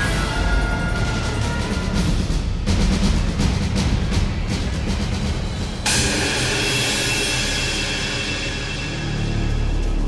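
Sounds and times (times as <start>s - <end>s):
shimmering musical hit: 5.8s - 10.0s.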